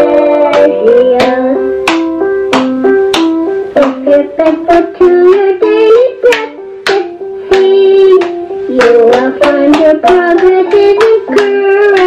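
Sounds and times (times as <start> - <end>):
percussive hits: 0.5 - 4.6, 6.3 - 12.0.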